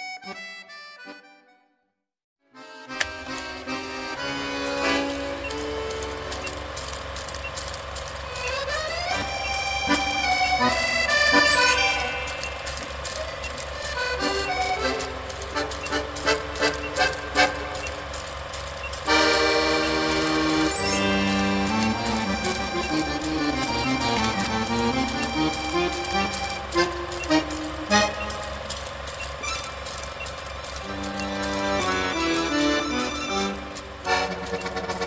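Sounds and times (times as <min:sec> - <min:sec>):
steady pulsing beat: 0:08.4 - 0:35.0
sustained chords: 0:19.0 - 0:28.8.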